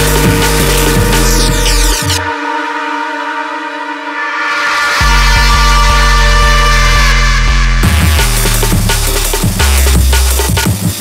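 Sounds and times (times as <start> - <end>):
sustained dark synth chord: 0.0 - 9.9
high noise build-up: 0.0 - 10.7.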